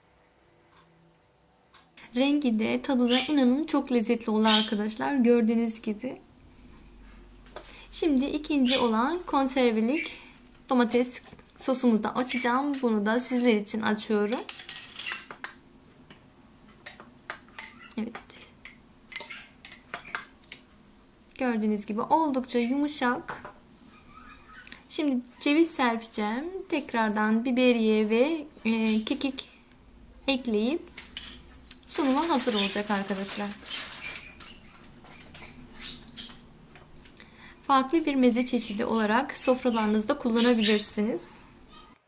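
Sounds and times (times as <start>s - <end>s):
nut pieces rustling and clicking: 31.0s - 35.5s.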